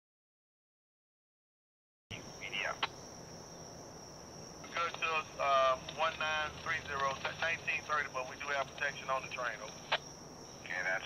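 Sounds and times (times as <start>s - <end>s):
voice over scanner radio: 2.1s - 2.9s, 4.6s - 10.0s, 10.6s - 11.0s
insects droning: 2.1s - 11.0s.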